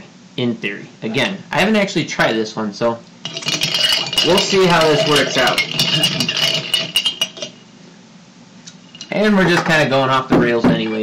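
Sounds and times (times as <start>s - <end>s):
spoon clinking in glass mug: 3.3s - 7.6s.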